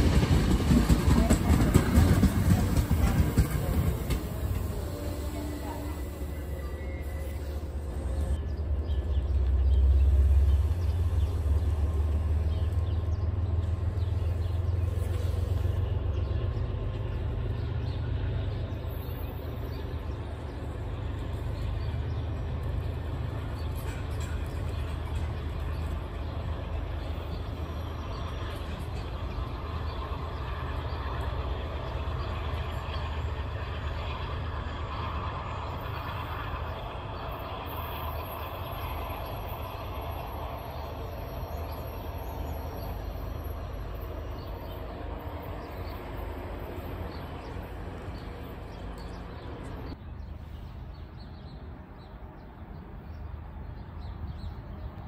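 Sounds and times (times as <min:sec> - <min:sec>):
diesel locomotive rumble: 0:00.0 - 0:55.0.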